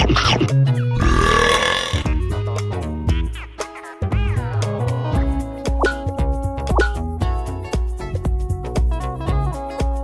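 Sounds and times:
long rough burp: 0:01.0 - 0:02.2
short throaty sound: 0:01.0 - 0:02.2.

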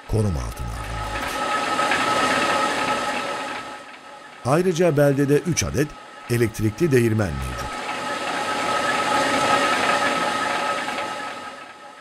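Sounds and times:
constant high hum: 0:00.0 - 0:12.0.

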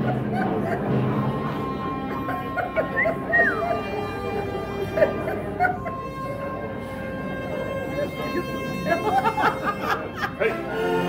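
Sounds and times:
audience chattering: 0:00.0 - 0:11.0
soft background music: 0:00.0 - 0:11.0.

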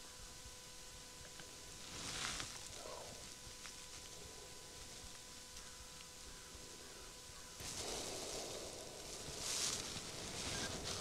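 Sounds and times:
faint high-pitched hum: 0:00.0 - 0:11.0.

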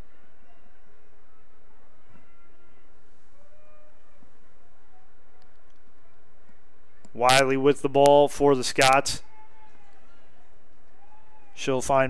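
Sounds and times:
outdoor field ambience: 0:00.0 - 0:12.0.

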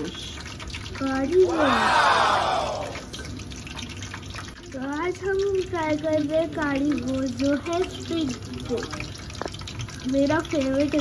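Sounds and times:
hot oil sizzling and crackling: 0:00.0 - 0:11.0.

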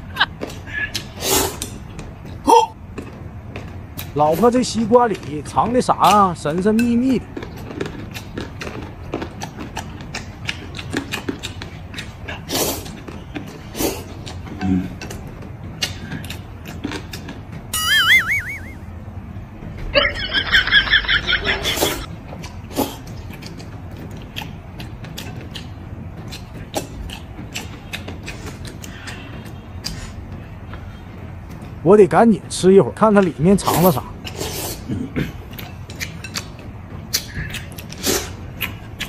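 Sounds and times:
man chewing noodles: 0:00.0 - 0:04.4, 0:06.7 - 0:18.8, 0:21.4 - 0:31.8, 0:33.7 - 0:39.0
short high bouncy notes: 0:17.8 - 0:18.9
wobbly warbling tone: 0:17.8 - 0:18.9.

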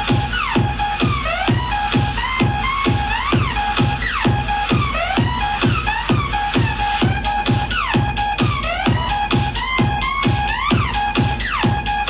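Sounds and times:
dance music with heavy beat: 0:00.0 - 0:12.0.

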